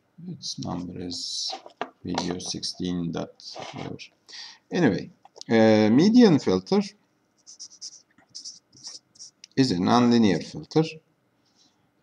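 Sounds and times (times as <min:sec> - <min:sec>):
marker writing on paper: 0:07.4 - 0:09.4.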